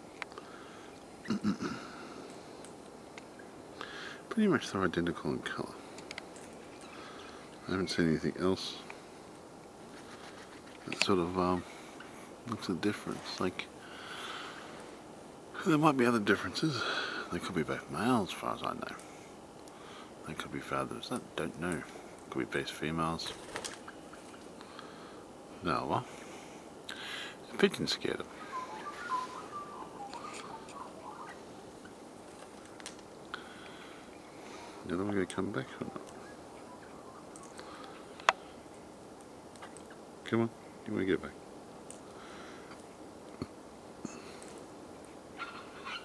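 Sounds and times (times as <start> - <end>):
background hiss: 0.0 - 46.0
faint background noise: 0.0 - 46.0
faint clicks: 2.2 - 3.9, 5.9 - 7.6, 18.9 - 19.8, 32.3 - 33.8, 37.3 - 38.4, 41.8 - 45.1
man speaking: 7.6 - 8.9, 10.8 - 11.7, 12.4 - 13.8, 15.6 - 19.0, 25.6 - 26.2, 27.5 - 30.9, 34.8 - 36.1
bird chirping: 27.8 - 32.0, 33.8 - 38.5, 45.4 - 46.0.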